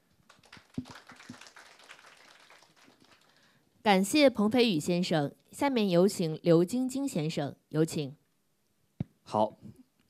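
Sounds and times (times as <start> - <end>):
audience clapping: 0.0 - 3.6.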